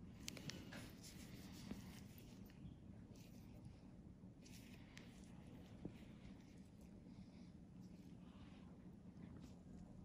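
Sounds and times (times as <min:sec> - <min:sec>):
cotton pad rubbing on skin: 0:00.8 - 0:03.8.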